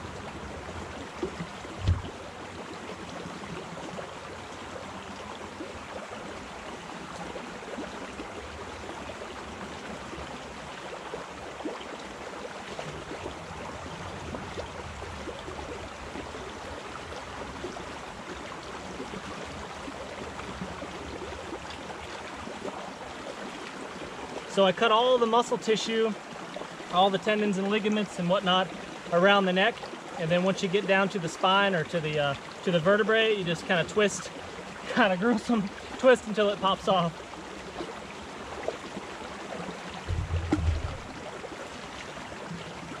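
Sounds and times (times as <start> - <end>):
creek water over rocks: 0.0 - 43.0
short deep thump: 1.8 - 2.1, 40.0 - 41.2.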